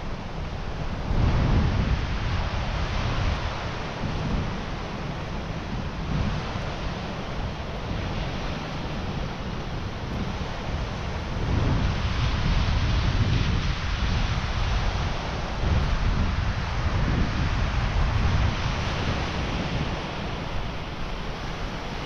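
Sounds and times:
surf breaking on beach: 0.0 - 22.0
wind buffeting microphone: 0.0 - 22.0.

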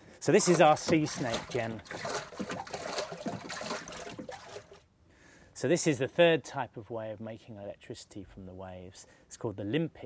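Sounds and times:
water sloshing and splashing: 0.2 - 4.9.

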